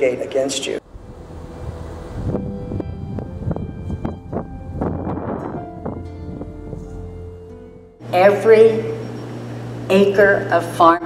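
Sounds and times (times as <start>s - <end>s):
wind rumbling on microphone: 0.8s - 7.5s
soft background music: 0.8s - 9.1s.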